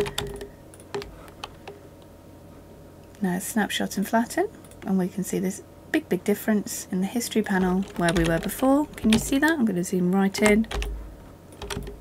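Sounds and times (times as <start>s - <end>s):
computer keyboard clicks: 0.0s - 1.8s, 7.6s - 9.6s, 11.6s - 12.0s.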